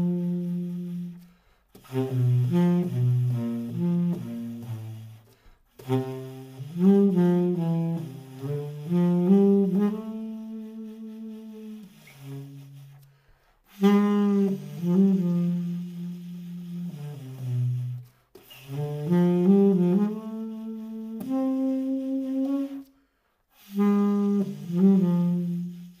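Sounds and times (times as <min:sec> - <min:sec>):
tenor saxophone solo: 0:00.0 - 0:26.0.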